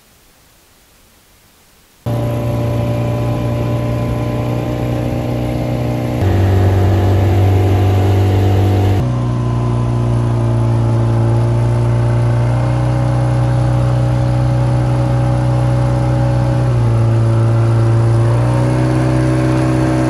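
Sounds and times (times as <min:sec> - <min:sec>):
boat motor running: 0:02.1 - 0:20.0.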